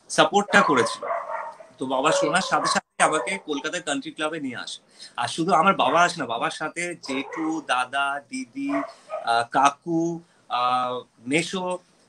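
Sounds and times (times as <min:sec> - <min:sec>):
person talking over video call: 0:00.0 - 0:01.1, 0:01.8 - 0:11.9.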